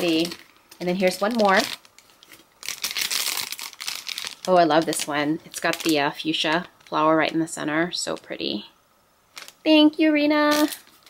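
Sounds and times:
cellophane bag crinkling: 0.0s - 8.6s, 9.3s - 9.7s, 10.5s - 11.0s.

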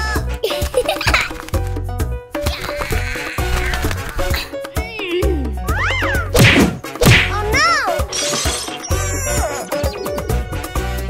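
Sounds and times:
background music: 0.0s - 11.0s
loud cartoon whack: 6.3s - 7.6s.

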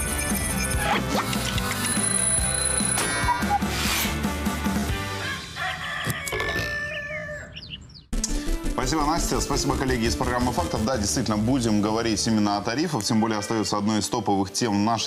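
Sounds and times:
jingle music: 0.0s - 3.0s
studio sound: 8.2s - 13.2s.

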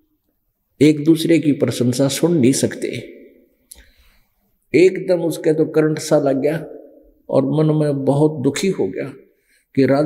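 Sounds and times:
man speaking: 0.8s - 3.1s, 4.7s - 9.2s, 9.8s - 10.0s.

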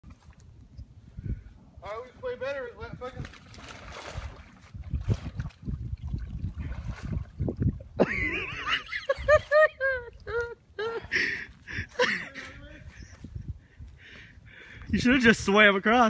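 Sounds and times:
water splashing: 3.0s - 10.6s
loud laughter: 8.0s - 11.2s.

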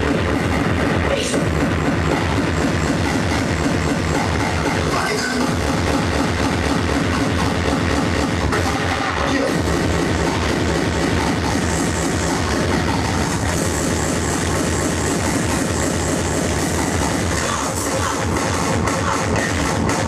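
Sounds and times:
fast electronic dance music: 0.0s - 20.0s.

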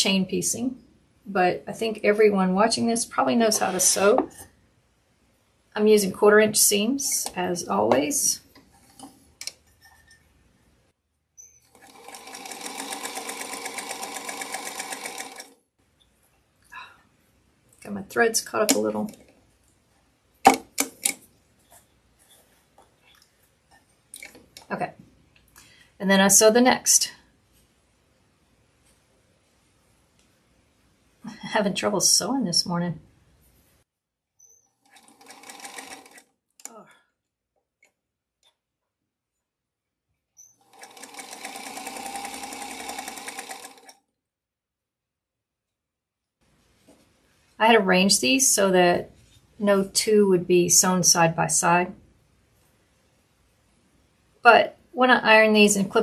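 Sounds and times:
sewing machine sharp clicks: 11.7s - 15.5s, 34.9s - 36.7s, 40.6s - 44.0s.

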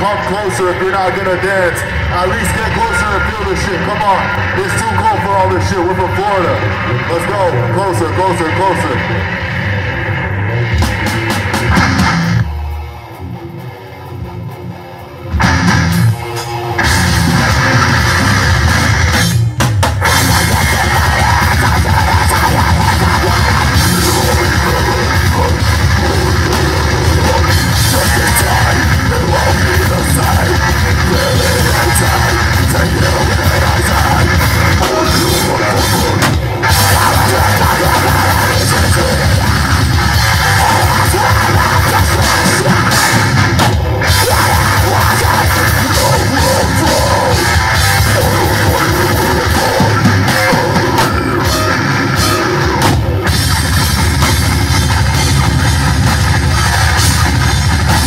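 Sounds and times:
heavy metal band playing: 0.0s - 58.0s.

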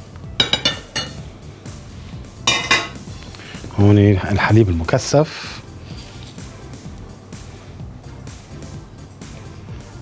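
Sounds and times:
background music: 0.0s - 10.0s
dishes and utensils clinking: 0.4s - 1.2s, 2.4s - 3.1s.

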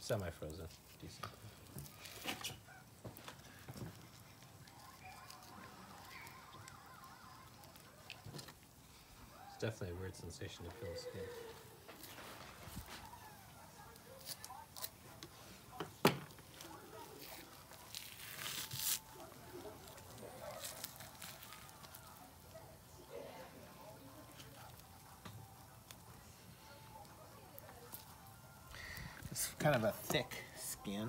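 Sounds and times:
fish skin tearing and crackling: 0.7s - 9.0s, 11.6s - 15.0s, 16.4s - 22.5s.

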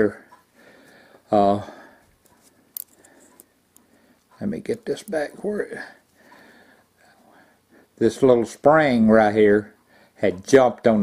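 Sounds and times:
faint metal ticks: 0.0s - 7.3s.

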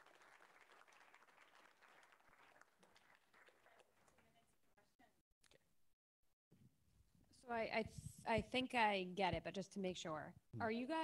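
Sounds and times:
faint audience applause: 0.0s - 4.6s.

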